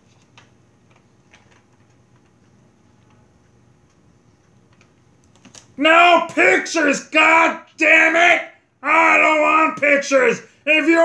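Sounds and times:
man shouting loudly: 5.8 - 11.0.

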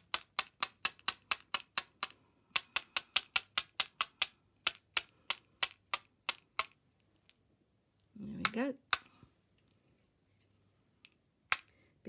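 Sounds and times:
plastic ruler tapping a pen: 0.0 - 6.8, 8.4 - 9.1.

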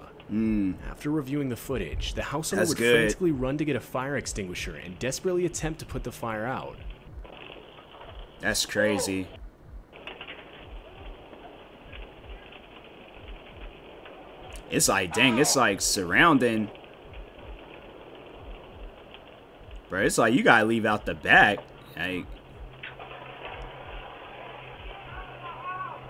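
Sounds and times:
fire rushing: 0.0 - 26.0
low steady hum: 0.0 - 26.0
soft low thumps: 0.3 - 3.6, 4.3 - 4.8, 6.7 - 7.3, 9.3 - 10.0, 17.0 - 19.9, 21.0 - 22.8.

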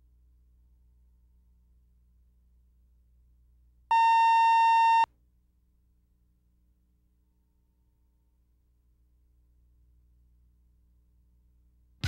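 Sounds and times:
steady electronic test tone beep: 3.9 - 5.1.

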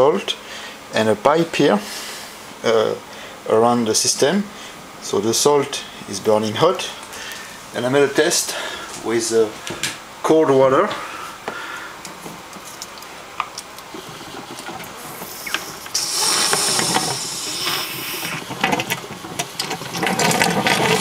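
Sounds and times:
water pouring into a plastic tub: 14.4 - 21.0.

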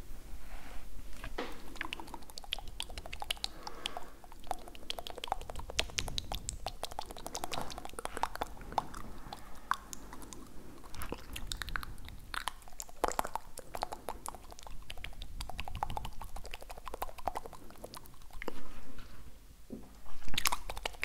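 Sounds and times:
wet mouth clicks and smacks: 1.3 - 18.7, 20.0 - 21.0.

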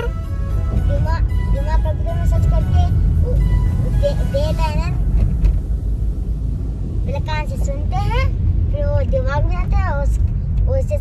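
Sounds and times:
high-pitched gliding voice: 0.0 - 5.0
car cabin road rumble: 0.0 - 11.0.

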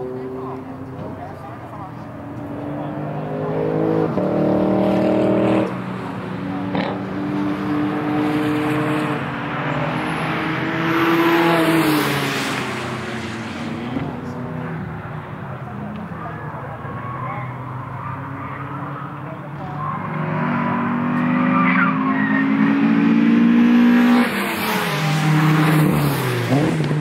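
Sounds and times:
race car engines revving: 0.0 - 27.0.

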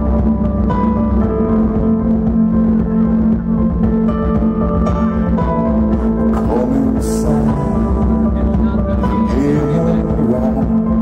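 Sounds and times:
steady low drone: 0.0 - 11.0.

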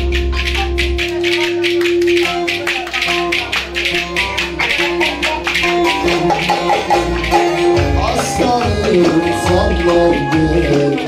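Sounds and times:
saz melody: 0.0 - 11.0.

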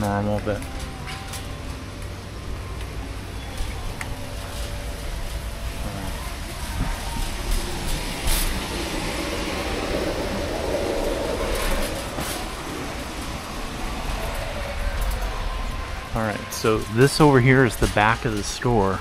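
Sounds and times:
shopping cart rolling on concrete: 0.0 - 19.0.

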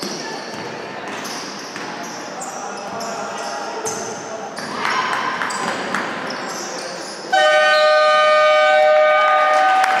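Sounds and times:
scoreboard horn two-tone blare: 7.3 - 10.0.

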